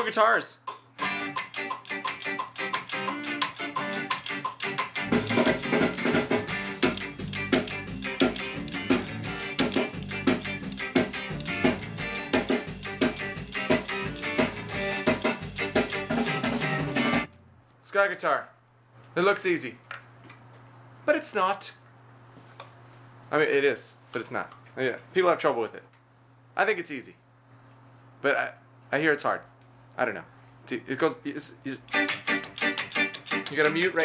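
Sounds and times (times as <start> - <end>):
electric guitar ska chords: 0.7 - 17.3, 31.8 - 34.0
bass and drums: 3.8 - 17.4.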